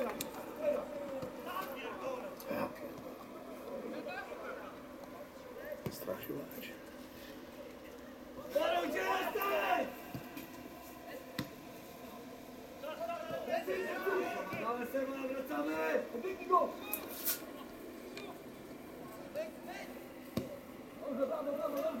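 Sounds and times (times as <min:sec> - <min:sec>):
men talking and calling out: 0:00.0 - 0:22.0.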